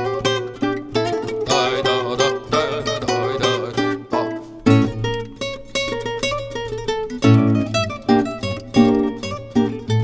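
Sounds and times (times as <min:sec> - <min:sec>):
classical guitars playing dance tune: 0:00.0 - 0:10.0.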